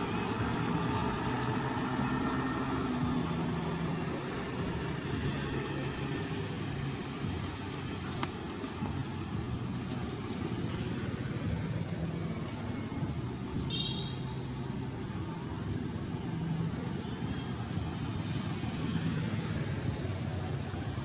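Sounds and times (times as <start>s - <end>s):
traffic rumble: 0.0s - 21.0s.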